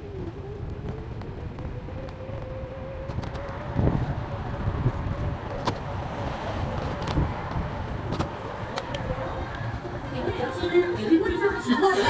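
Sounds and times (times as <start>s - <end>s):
electric bicycle motor whine: 0.0s - 6.2s
road rumble: 0.0s - 12.0s
wind: 0.0s - 12.0s.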